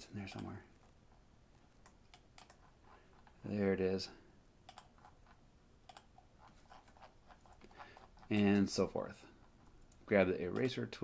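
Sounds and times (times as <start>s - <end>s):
faint computer clicks: 0.2s - 0.6s, 1.8s - 2.6s, 4.6s - 5.1s, 5.8s - 6.1s, 9.8s - 11.0s.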